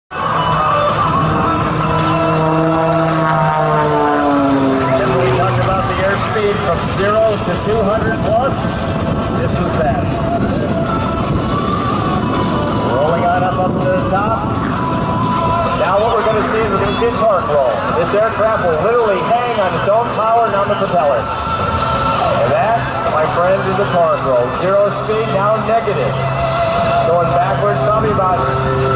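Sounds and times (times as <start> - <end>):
propeller airplane engine droning: 0.1 - 28.9.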